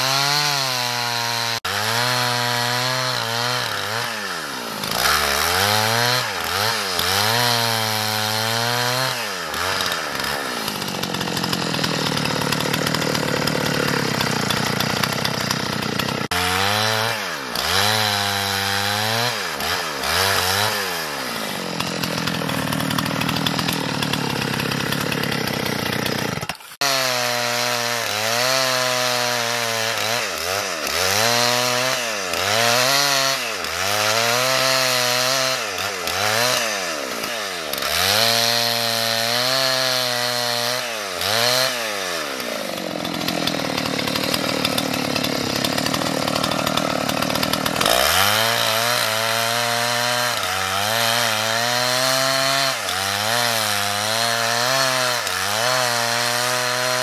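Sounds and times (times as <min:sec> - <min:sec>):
chainsaw cutting a log: 0:00.0 - 0:57.0.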